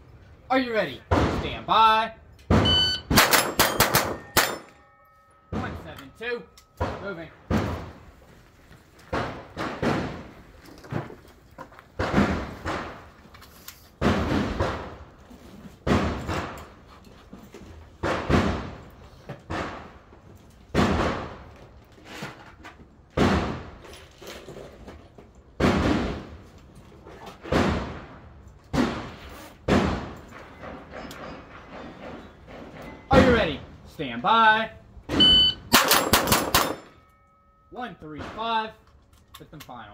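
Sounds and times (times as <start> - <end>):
rifle shots hitting steel plates: 2.5 - 8.2, 35.1 - 38.7.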